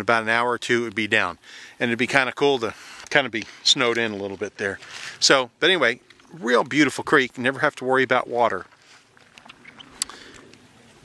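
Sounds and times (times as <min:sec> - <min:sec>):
water in shallow creek: 0:00.0 - 0:11.0.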